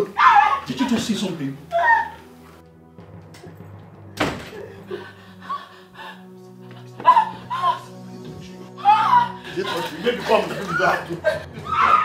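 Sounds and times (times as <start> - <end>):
background music: 0.0 - 12.0
wooden door banging shut: 4.2 - 4.6.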